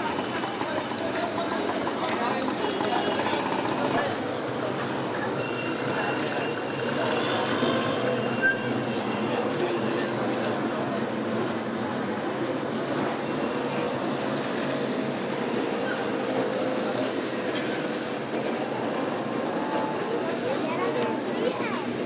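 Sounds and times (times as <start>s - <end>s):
busy street traffic: 0.0s - 22.0s.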